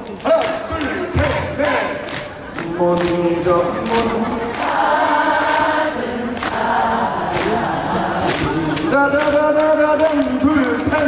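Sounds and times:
voices singing in chorus: 0.8s - 9.1s.

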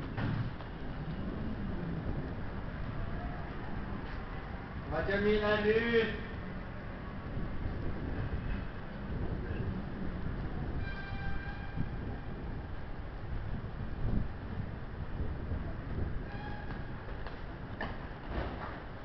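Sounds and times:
train rumbling: 0.0s - 19.0s.

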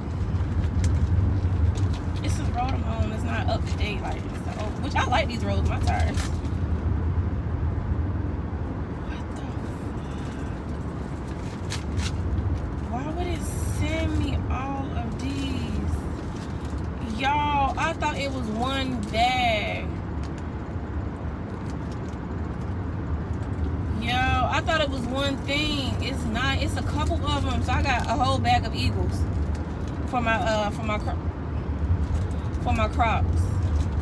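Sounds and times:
car cabin road rumble: 0.0s - 34.0s.

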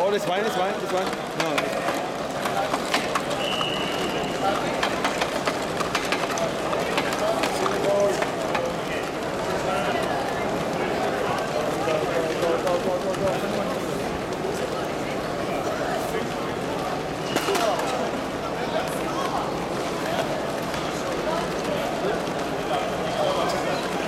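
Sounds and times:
chatter of many voices: 0.0s - 24.0s.

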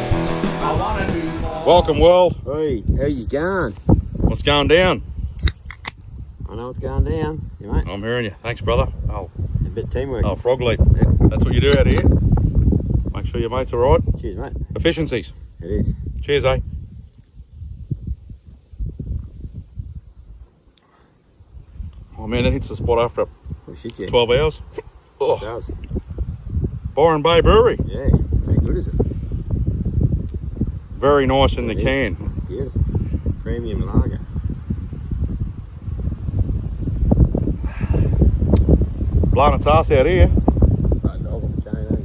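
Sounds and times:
wind buffeting microphone: 0.8s - 20.6s, 21.4s - 42.0s.

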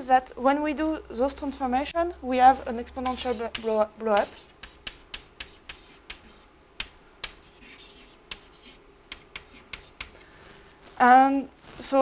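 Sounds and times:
chalk tapping and scratching on blackboard: 2.5s - 12.0s.

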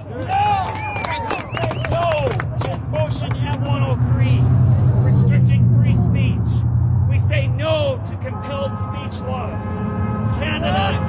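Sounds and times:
vehicle engine hum: 0.0s - 11.0s
voices: 0.0s - 11.0s.

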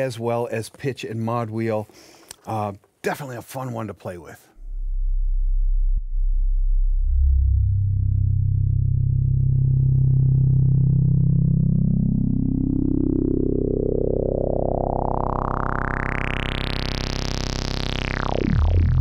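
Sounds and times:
synthesizer deep bass note: 4.6s - 19.0s.

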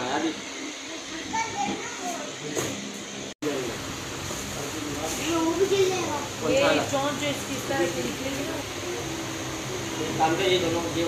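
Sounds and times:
murmur of room noise: 0.0s - 11.0s
children's voices: 1.0s - 2.4s
background chatter: 4.4s - 11.0s.

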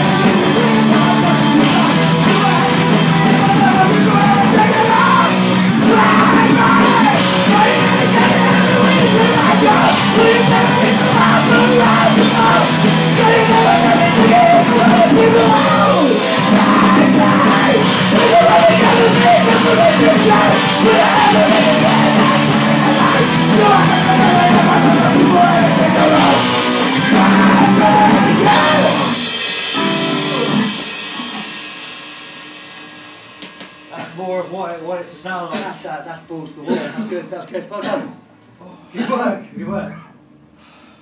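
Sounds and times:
shouted vocals: 0.0s - 29.3s
distorted electric guitar: 0.0s - 34.0s
bass guitar: 0.0s - 34.2s
drum kit: 0.0s - 37.0s.

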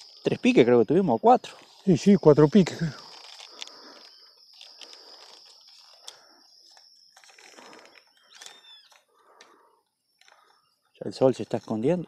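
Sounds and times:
crickets trilling: 0.0s - 12.0s
bird call: 8.1s - 9.0s.

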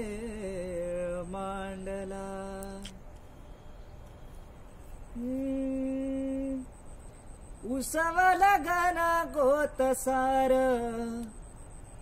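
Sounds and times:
man humming a held note: 5.1s - 6.7s.

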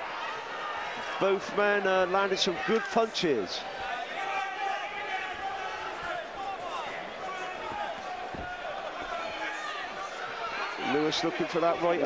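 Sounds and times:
crowd talking and shouting: 0.0s - 12.0s.

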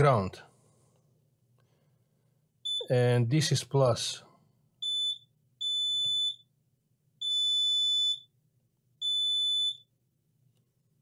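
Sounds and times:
continuity tester beeping: 2.7s - 2.9s, 4.8s - 6.4s.

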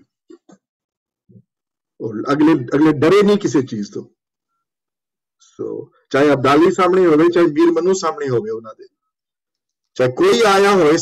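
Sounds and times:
person speaking over video call: 1.2s - 11.0s.

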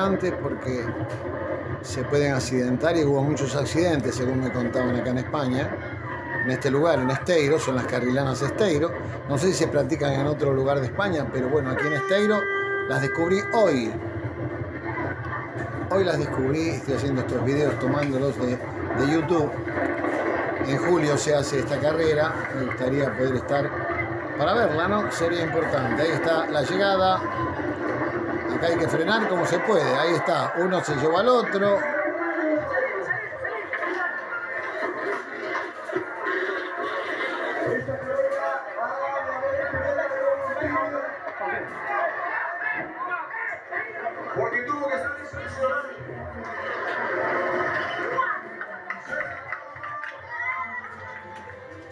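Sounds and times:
faint crowd voices: 0.0s - 51.9s
television background music: 0.0s - 51.9s.

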